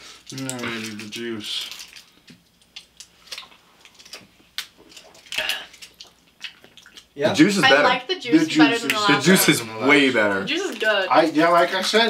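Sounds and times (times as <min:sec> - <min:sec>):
person sipping juice: 0:04.8 - 0:07.2.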